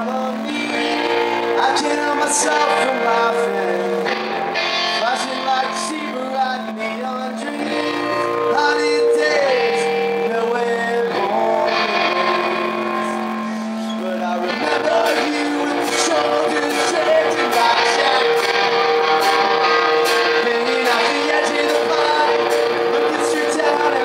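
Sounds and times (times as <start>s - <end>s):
electric guitar: 0.0s - 24.0s
man singing long notes: 0.0s - 24.0s.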